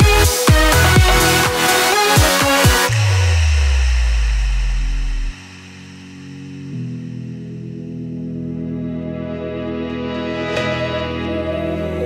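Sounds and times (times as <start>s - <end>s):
deep bass note: 0.1s - 1.8s, 2.9s - 8.0s
faint synth pad: 2.9s - 8.4s.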